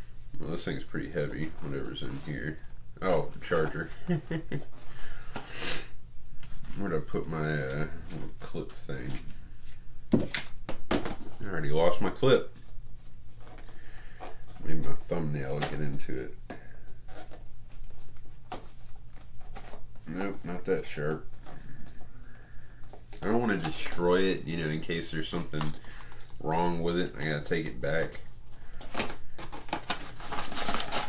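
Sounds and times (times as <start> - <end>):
paper and plastic crinkling: 21.2 - 31.0
thumbnail scraping packaging: 28.8 - 31.0.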